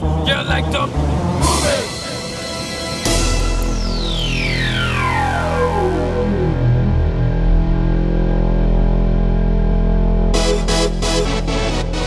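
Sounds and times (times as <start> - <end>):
falling synth sweep: 2.5 - 9.0
low sustained bass tones: 3.0 - 12.0.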